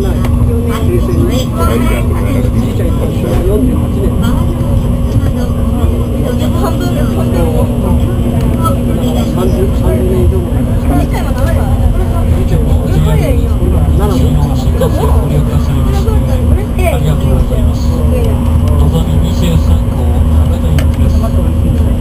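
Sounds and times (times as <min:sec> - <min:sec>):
passengers talking faintly: 0:00.0 - 0:22.0
train cabin rumble and hum: 0:00.0 - 0:22.0.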